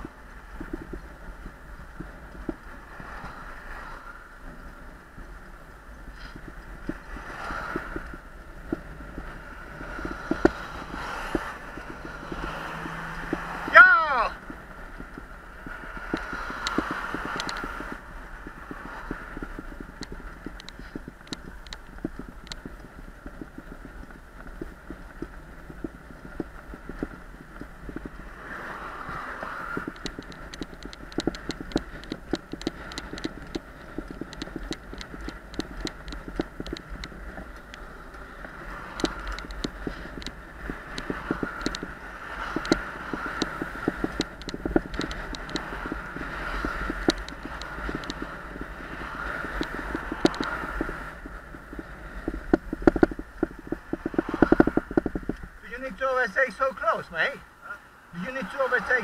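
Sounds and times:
small rattles and clicks: 0.0 - 57.4
cars passing: 0.0 - 59.0
road and wind noise: 0.0 - 59.0.

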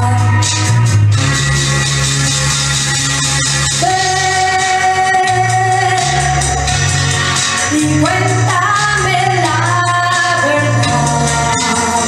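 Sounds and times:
instrumental backing track: 0.0 - 12.0.

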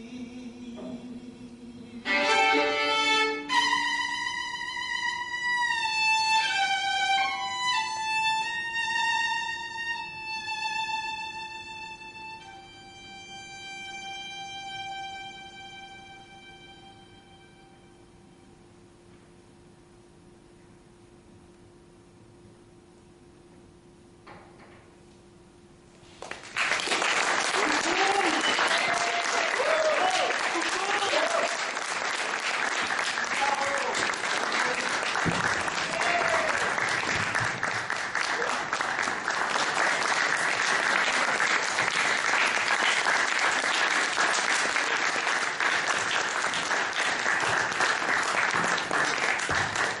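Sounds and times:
audience applause: 26.2 - 50.0.

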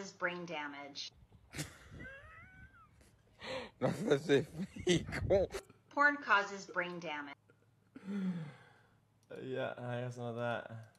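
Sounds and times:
pet whining cry: 2.0 - 3.1.

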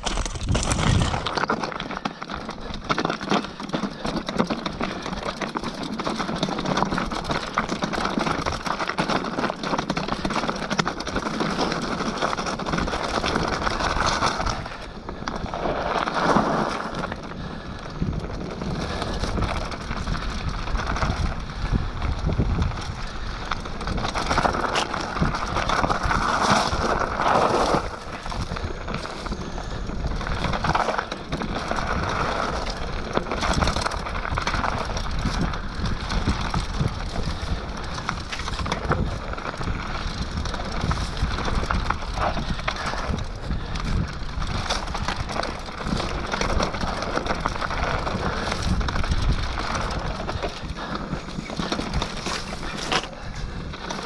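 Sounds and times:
bike rattling and knocking: 0.0 - 54.0
tyres rushing over dirt and stones: 0.0 - 54.0
wind on microphone: 17.5 - 54.0.

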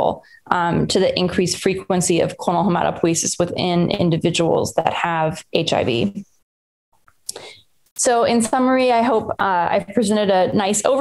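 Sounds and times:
woman speaking: 0.0 - 6.2, 7.3 - 11.0.

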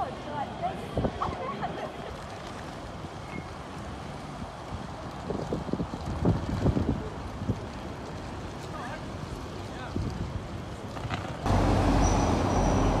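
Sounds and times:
wind noise on microphone: 0.8 - 8.5, 9.2 - 11.5.

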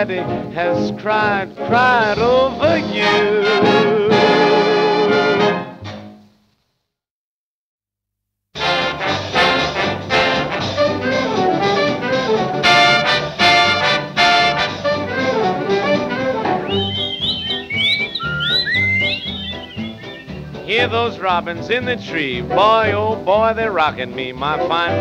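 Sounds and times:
rhythm section playing: 8.6 - 11.1, 16.6 - 21.6
swing band brass hits: 8.6 - 22.2
whistles imitating birdsong: 16.6 - 20.9.

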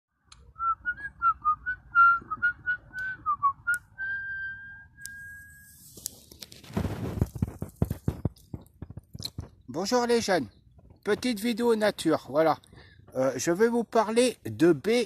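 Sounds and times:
person whistling a tune: 0.6 - 5.8
rustling and handling noise: 5.2 - 9.7.

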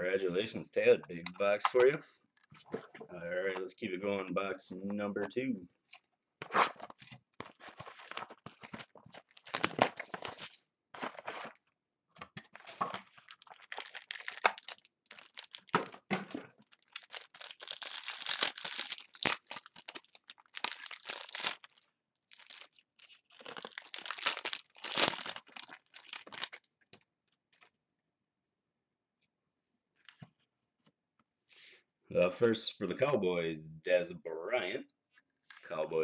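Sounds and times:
wrappers tearing and crinkling: 7.4 - 11.6, 12.6 - 15.8, 16.6 - 26.6.

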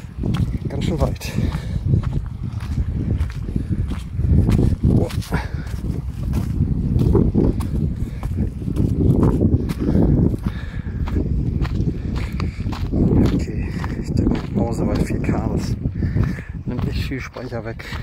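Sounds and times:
footsteps on stony path: 0.0 - 18.0.

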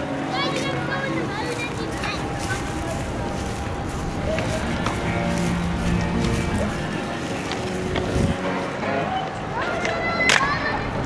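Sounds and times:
people talking: 0.0 - 11.0
music with held notes: 2.0 - 11.0.

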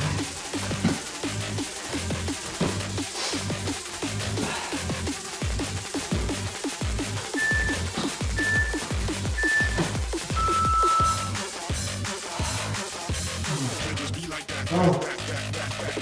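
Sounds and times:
electronic dance music: 5.2 - 16.0
timer beeps: 7.4 - 11.4.

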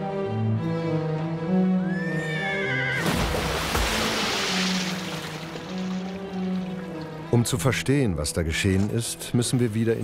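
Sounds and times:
low string music: 0.0 - 10.0
horse whinnying: 1.9 - 3.1
long splash into water: 3.0 - 6.8.

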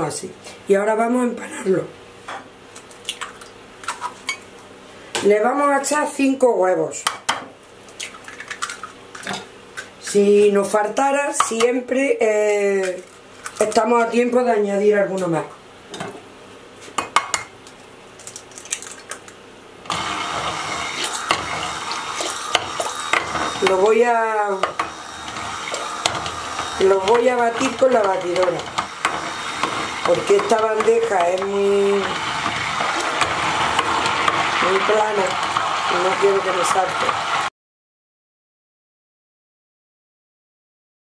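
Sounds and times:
immersion blender running: 19.9 - 37.5.

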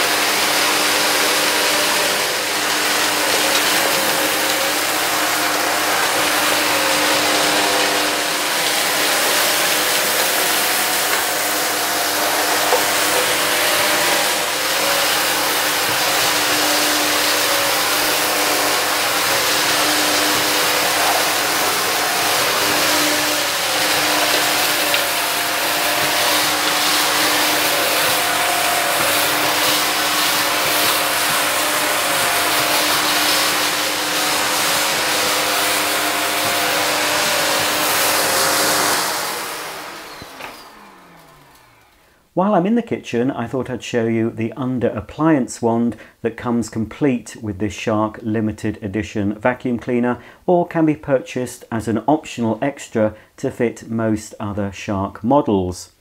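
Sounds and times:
vacuum motor winding down: 0.0 - 42.2
vacuum cleaner running: 0.0 - 42.4.

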